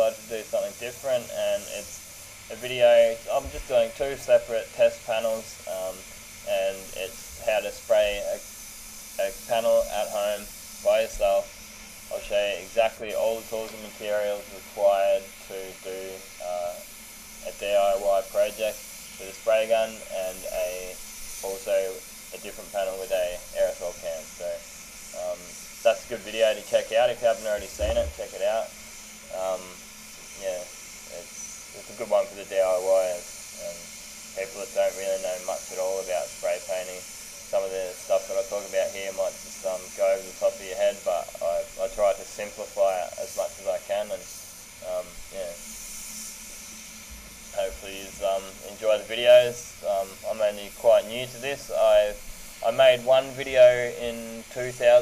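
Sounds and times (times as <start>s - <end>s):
person talking: 0.0s - 8.4s, 9.2s - 11.5s, 12.1s - 16.8s, 17.4s - 24.6s, 25.2s - 28.7s, 29.3s - 29.8s, 30.4s - 33.8s, 34.4s - 45.6s, 47.6s - 55.0s
faint steady hiss: 0.0s - 55.0s.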